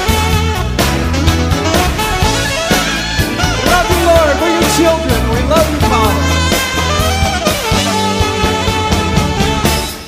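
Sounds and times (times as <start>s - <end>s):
upbeat worship band music: 0.0s - 10.0s.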